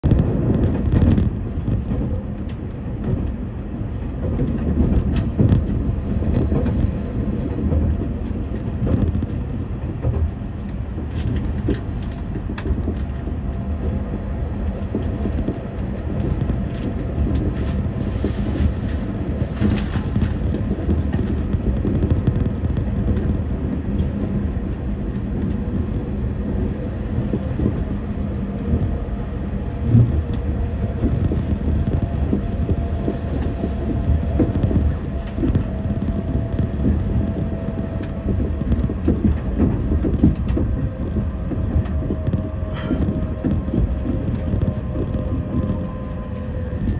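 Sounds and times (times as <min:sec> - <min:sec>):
track clicks and knocks: 0:00.0 - 0:46.9
train wheels rumbling on rails: 0:00.0 - 0:46.9.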